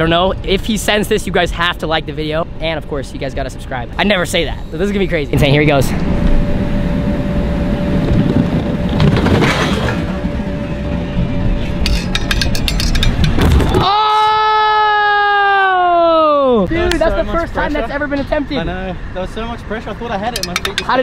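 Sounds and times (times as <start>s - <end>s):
long pitched sound sinking: 4.7s - 11.9s
wind rumble on microphone: 5.3s - 13.8s.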